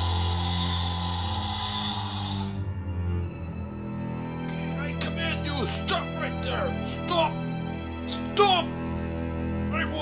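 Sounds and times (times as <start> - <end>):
tense scary background music: 0.0 - 10.0.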